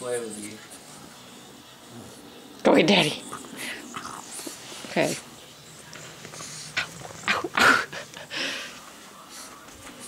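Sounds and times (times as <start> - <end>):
puppy vocalizing: 3.0 - 5.4, 6.2 - 8.2.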